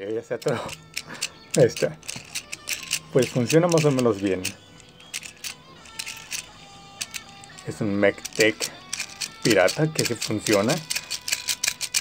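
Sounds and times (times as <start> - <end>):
faint background music: 0.0 - 12.0
plastic toy parts clicking: 0.3 - 12.0.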